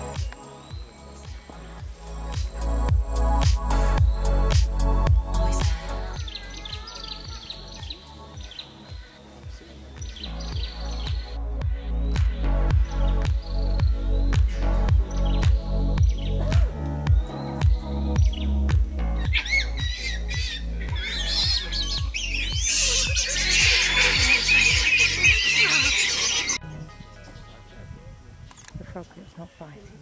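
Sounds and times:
background music with steady beat: 0.0s - 28.3s
outdoor background: 0.0s - 30.0s
monkey high wavering calls: 19.2s - 26.6s.

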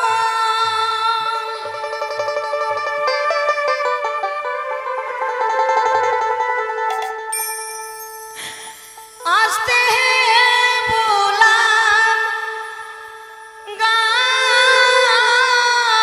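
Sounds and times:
mandolin picking quick notes: 1.8s - 9.3s.

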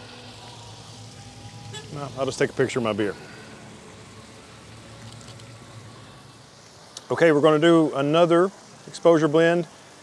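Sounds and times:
vehicle engines humming: 0.0s - 7.0s
fountain water rushing: 0.0s - 10.0s.

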